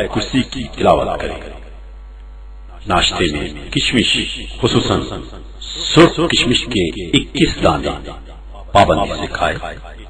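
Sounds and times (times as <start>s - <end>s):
man reading aloud: 0.0s - 1.6s, 2.8s - 9.8s.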